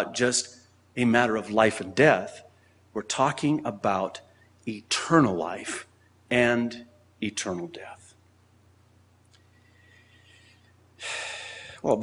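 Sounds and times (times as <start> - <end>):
speech: 0.0 - 8.2, 11.8 - 12.0
faint low hum: 0.0 - 12.0
man's sharp breath: 9.5 - 11.8.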